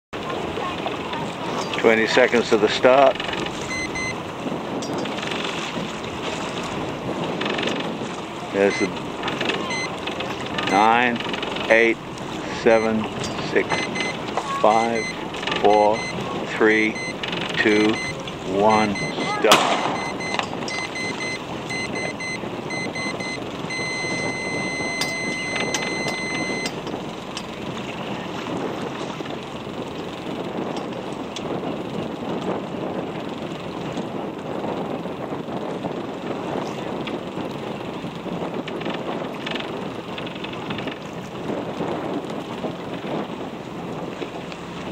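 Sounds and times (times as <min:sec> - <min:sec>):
choppy water: 0:00.1 - 0:44.9
wind buffeting microphone: 0:00.2 - 0:44.9
electronic timer beeping: 0:03.2 - 0:04.2, 0:08.7 - 0:10.0, 0:10.6 - 0:12.1, 0:12.7 - 0:16.2, 0:16.8 - 0:26.8.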